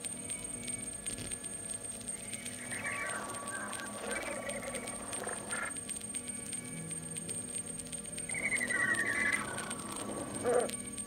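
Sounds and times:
record clicks and crackle: 0.0 - 11.0
warbling chirping sounds: 2.0 - 6.8, 7.7 - 11.0
thin high tone: 2.1 - 11.0.

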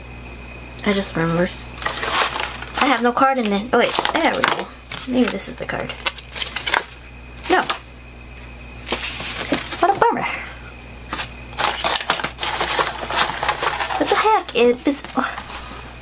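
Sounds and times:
paper packaging rustling and tapping: 1.8 - 7.0, 11.1 - 15.5.

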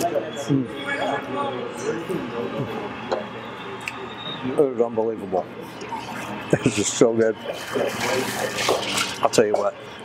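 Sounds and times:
diners chattering: 0.0 - 10.0.

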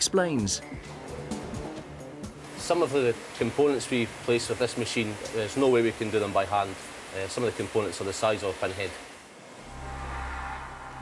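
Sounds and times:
faint hiss: 0.6 - 11.0
low steady hum: 9.4 - 11.0.

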